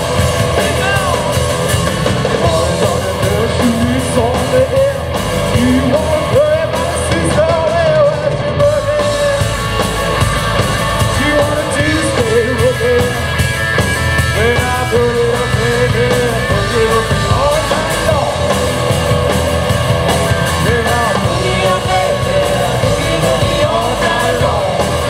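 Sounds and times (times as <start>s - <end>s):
blues-rock band playing: 0.0s - 25.0s.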